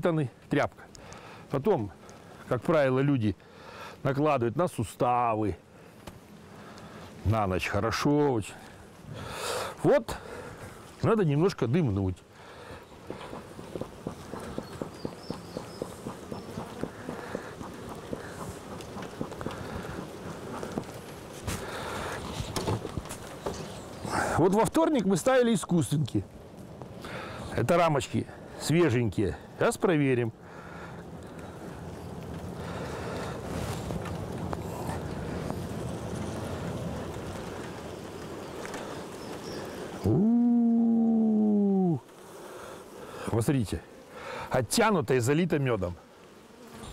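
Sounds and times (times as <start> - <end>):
honeybees humming: 12.3 - 24.4, 30.4 - 45.0
bellows smoker puffs: 12.5 - 23.3.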